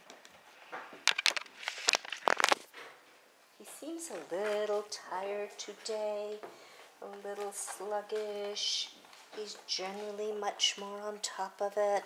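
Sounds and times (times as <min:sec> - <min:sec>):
rustling: 0:00.0 - 0:11.0.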